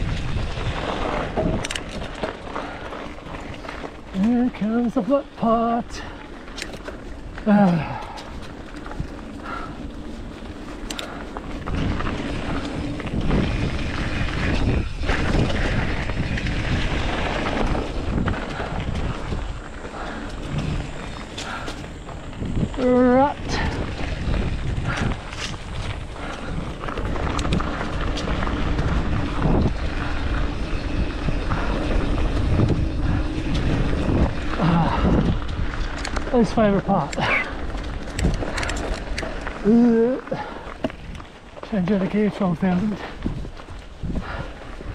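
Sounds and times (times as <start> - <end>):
wind on microphone: 0.0 - 6.1, 7.0 - 44.9
bike knocking and rattling: 0.0 - 44.9
bike tyres rolling over gravel: 0.0 - 44.9
rider calling out: 4.1 - 6.2, 7.4 - 8.2, 22.6 - 24.0, 36.2 - 37.7, 39.6 - 40.7.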